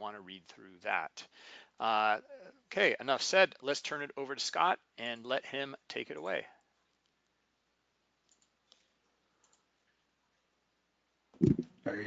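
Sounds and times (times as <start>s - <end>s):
faint clicks: 8.2s - 10.1s.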